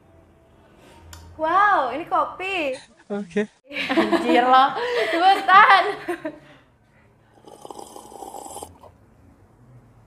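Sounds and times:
person slurping coffee: 0:07.4 - 0:09.0.

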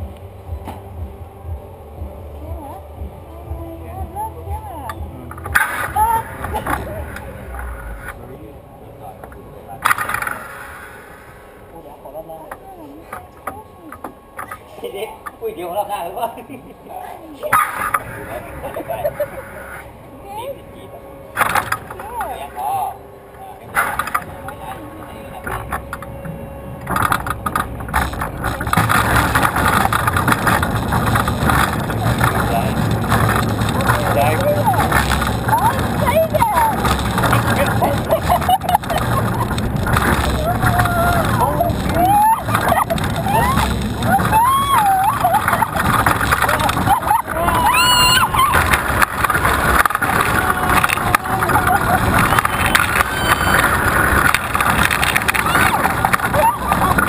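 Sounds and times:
roller coaster rumbling on track: 0:00.0 - 0:57.0
wind noise on microphone: 0:25.4 - 0:57.0
rider high-pitched cries: 0:40.2 - 0:49.0, 0:50.0 - 0:53.8, 0:55.4 - 0:57.0.

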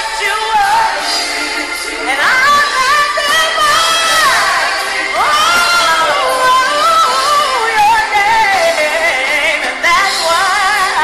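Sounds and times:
gospel worship music: 0:00.0 - 0:11.0.

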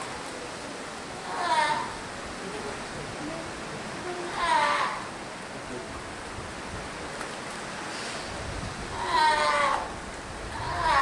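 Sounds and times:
sea lion pup calling: 0:01.2 - 0:02.0, 0:04.2 - 0:05.1, 0:08.9 - 0:11.0.

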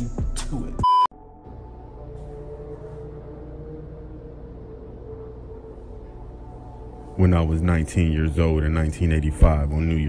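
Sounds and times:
dark ambient horror music: 0:01.2 - 0:10.0.

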